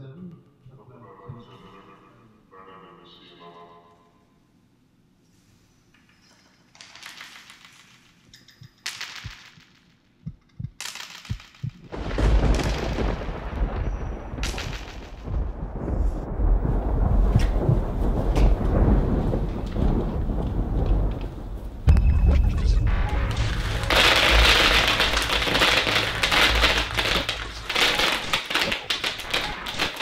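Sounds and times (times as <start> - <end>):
thunder rumbling: 11.9 - 30.0.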